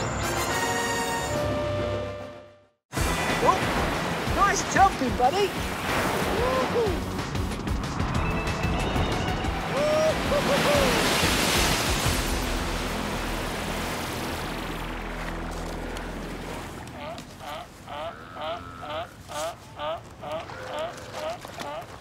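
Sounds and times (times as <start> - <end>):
background music: 0.0 - 18.1
ocean waves breaking: 2.9 - 22.0.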